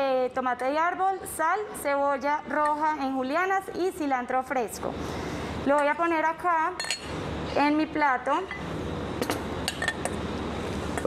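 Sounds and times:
metal spoon clinking on steel bowl: 6.8 - 7.1.

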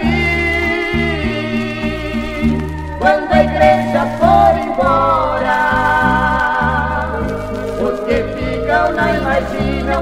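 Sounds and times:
gospel music with vibrato melody: 0.0 - 10.0.

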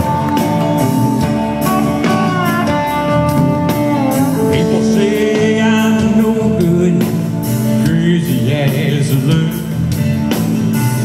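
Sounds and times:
electric guitar bent notes: 0.0 - 11.0
live rock band playing: 0.0 - 11.0.

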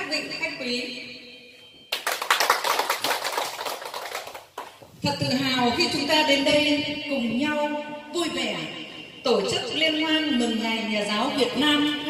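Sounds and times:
audience applauding: 1.9 - 4.8.

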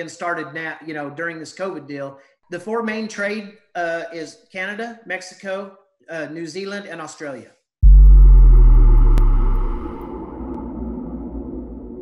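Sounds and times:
loud deep boom: 7.8 - 12.0
steady noise layer: 7.8 - 12.0.

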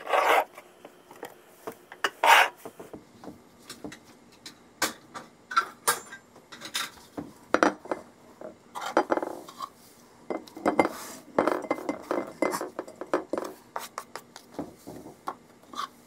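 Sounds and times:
glass dish set on countertop: 10.3 - 13.5.

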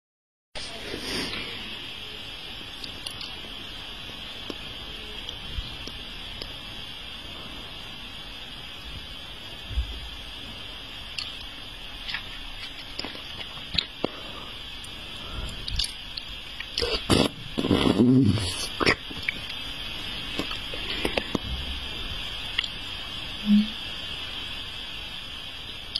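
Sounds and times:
background hiss: 0.6 - 25.9
wet mouth clicks and smacks: 15.6 - 16.8, 18.8 - 19.5.

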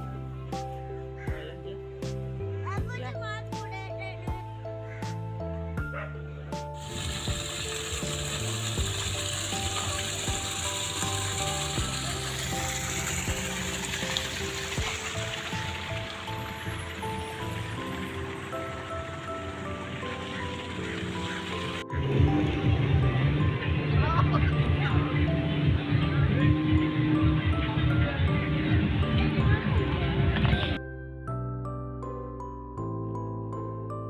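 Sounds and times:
slow melody music: 0.0 - 34.0
rain hiss: 6.8 - 21.8.

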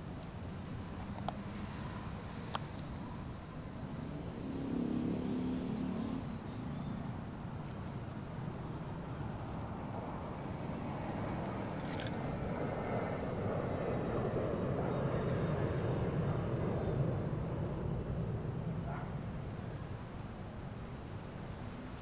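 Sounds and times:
jet airliner rumble overhead: 0.0 - 22.0
camera shutter click: 11.8 - 12.2.

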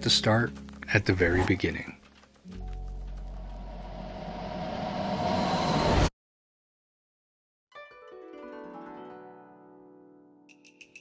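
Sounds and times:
rising whoosh sound effect: 3.6 - 6.1.

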